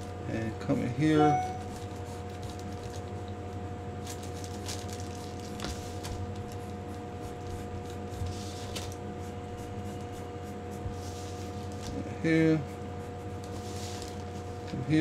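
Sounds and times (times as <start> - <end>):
steady low hum: 0.0 - 15.0
pencil scratching on paper: 6.5 - 11.7, 12.4 - 14.5.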